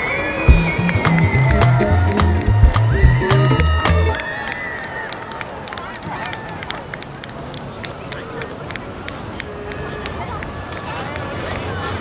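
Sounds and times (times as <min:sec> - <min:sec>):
steady street noise: 0:00.0 - 0:12.0
voices of passers-by: 0:00.0 - 0:12.0.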